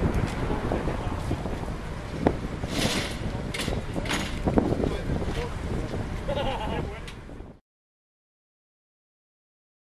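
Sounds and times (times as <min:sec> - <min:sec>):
wind rumble on microphone: 0:00.0 - 0:07.6.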